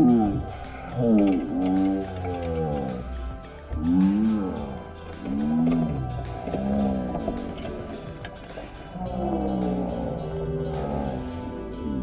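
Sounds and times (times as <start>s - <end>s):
person making drawn-out oh sounds: 0.0s - 8.0s, 9.0s - 12.0s.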